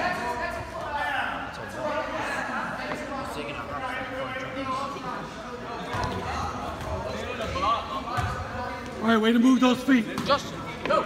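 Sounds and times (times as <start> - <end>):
chatter of players and spectators: 0.0 - 11.0
basketball bouncing on gym floor: 8.2 - 8.4.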